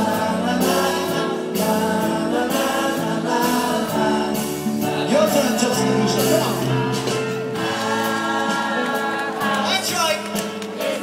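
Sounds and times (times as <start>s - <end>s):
live rock band: 0.0s - 11.0s
voices singing harmony: 0.0s - 11.0s.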